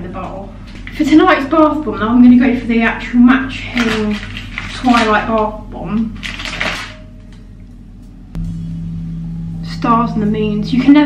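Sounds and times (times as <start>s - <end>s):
faint low room hum: 0.0s - 11.0s
steady low hum: 0.0s - 11.0s.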